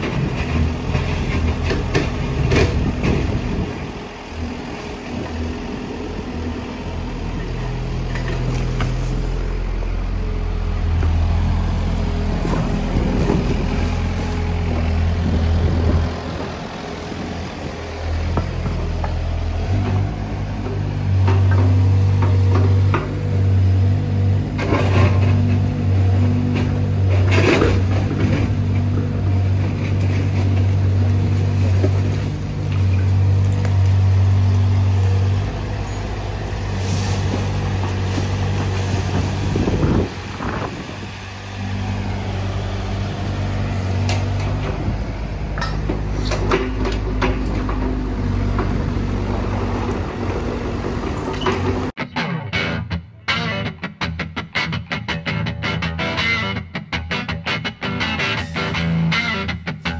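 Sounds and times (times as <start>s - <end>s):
excavator diesel engine working: 0.0s - 52.7s, 57.6s - 59.9s
bucket scraping soil and rock: 35.7s - 40.9s.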